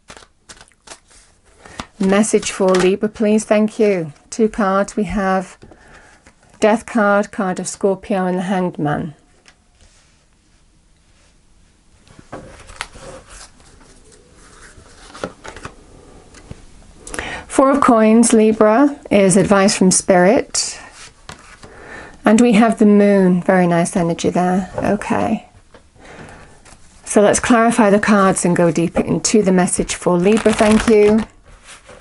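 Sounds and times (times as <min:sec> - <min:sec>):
cards rustling as shuffled: 0:00.0 - 0:03.4, 0:12.4 - 0:16.6, 0:29.8 - 0:32.0.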